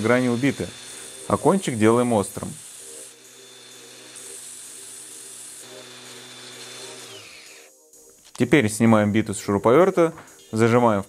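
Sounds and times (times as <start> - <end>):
angle grinder grinding metal: 0.0 - 7.7
cordless drill running: 0.0 - 7.7.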